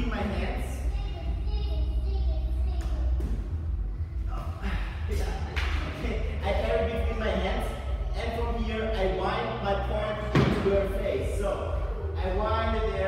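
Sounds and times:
low talk in echoing hall: 0.0s - 13.0s
steady low hum: 0.0s - 13.0s.

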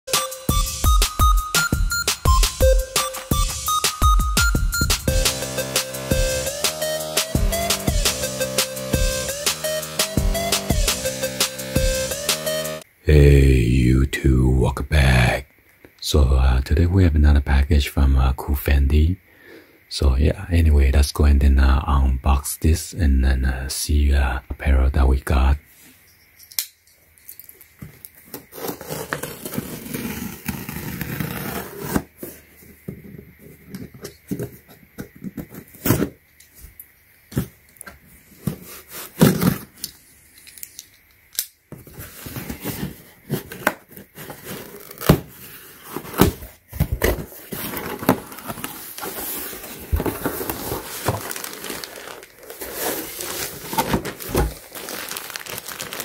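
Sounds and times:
plastic mailer bag crinkling: 47.0s - 56.0s.

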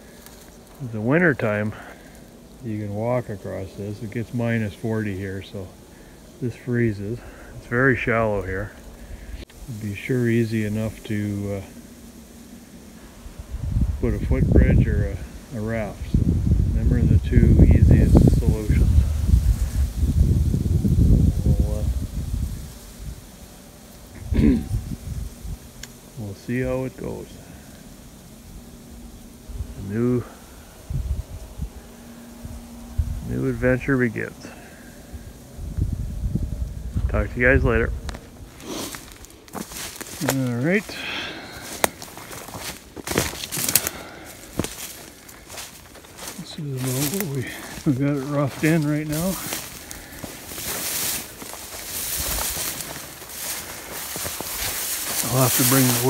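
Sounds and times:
dry twigs snapping: 0.0s - 0.9s, 25.7s - 26.1s, 38.0s - 56.0s
dry grass rustling: 0.0s - 56.0s
wind buffeting microphone: 13.1s - 56.0s
man's short vocal sound: 24.2s - 24.8s.

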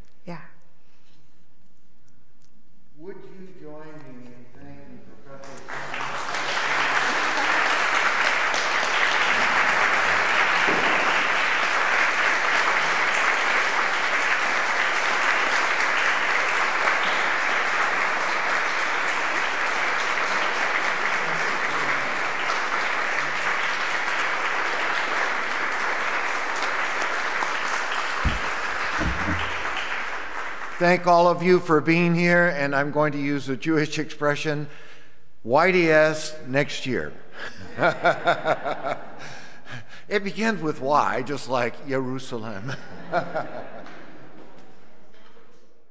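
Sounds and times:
audience applauding: 5.4s - 31.4s
low thumps: 28.2s - 29.5s.

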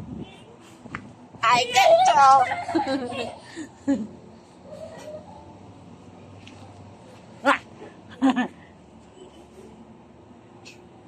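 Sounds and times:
high-pitched laughing squeals: 1.8s - 5.6s.

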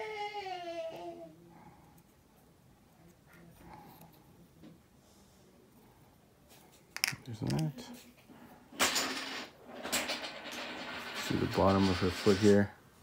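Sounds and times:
man talking: 7.1s - 8.0s, 11.3s - 12.8s.

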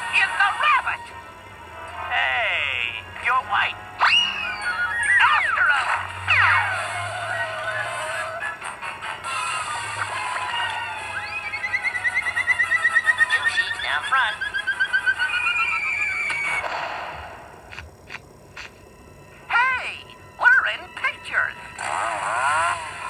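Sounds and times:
cartoon soundtrack music: 0.0s - 16.8s, 19.3s - 23.0s
comic sound effects: 4.0s - 8.6s, 10.1s - 17.1s.

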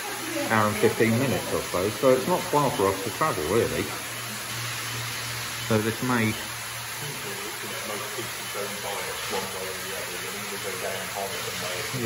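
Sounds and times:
hiss of circulating water: 0.0s - 12.0s.

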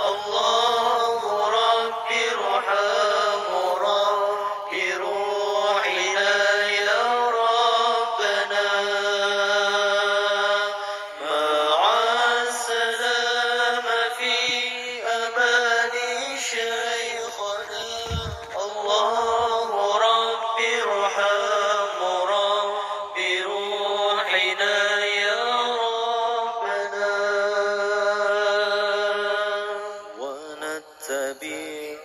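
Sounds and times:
person chanting long ornamented notes: 0.0s - 32.0s.

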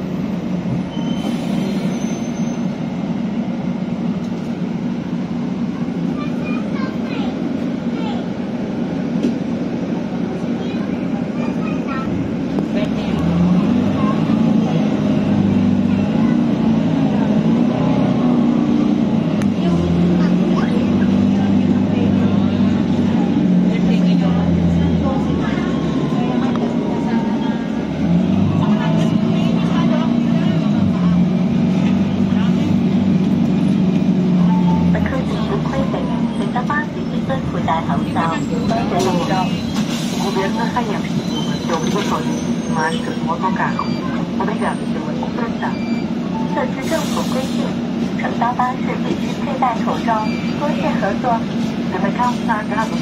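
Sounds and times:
bus engine drone: 0.0s - 53.0s
passengers' voices: 0.0s - 53.0s
road noise: 0.0s - 53.0s.

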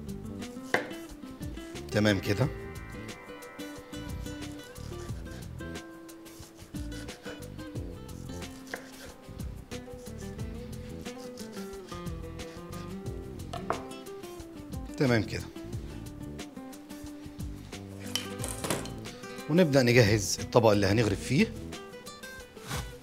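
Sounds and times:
background music: 0.0s - 23.0s
knife tapping on cutting board: 0.7s - 1.0s, 13.5s - 13.9s.

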